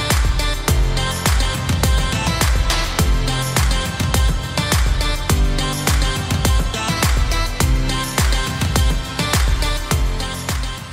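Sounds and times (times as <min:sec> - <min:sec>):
background music with steady beat: 0:00.0 - 0:10.9.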